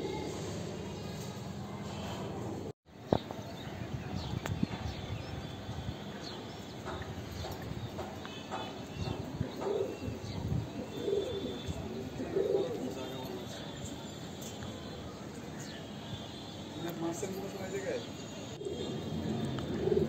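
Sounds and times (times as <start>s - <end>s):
pigeon cooing: 9.1s - 13.1s, 18.6s - 20.0s.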